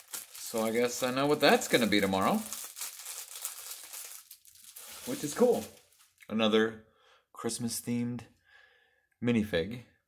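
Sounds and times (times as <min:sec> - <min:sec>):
packaging crinkling: 0:00.0 - 0:06.2.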